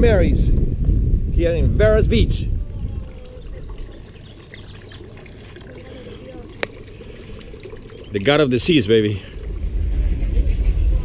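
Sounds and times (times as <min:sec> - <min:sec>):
faint distant voices: 0:02.5 - 0:11.0
faint trickle of water: 0:02.8 - 0:10.4.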